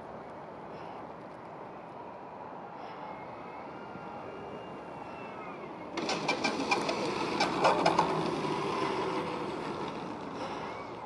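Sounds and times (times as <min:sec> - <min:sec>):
landing gear clatter on asphalt: 0:06.0 - 0:10.6.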